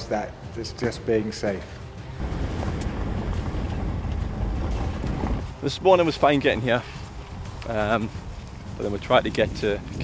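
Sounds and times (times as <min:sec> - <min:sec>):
car engine and road rumble: 0:02.2 - 0:05.6.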